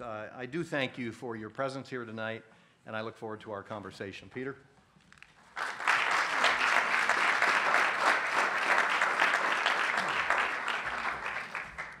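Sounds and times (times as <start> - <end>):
audience applauding: 5.5 - 12.0.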